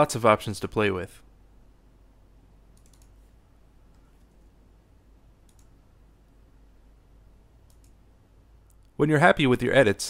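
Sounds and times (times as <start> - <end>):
faint keyboard and mouse clicks: 2.7 - 3.3, 3.9 - 4.5, 5.4 - 5.8, 7.6 - 8.0, 8.6 - 9.0.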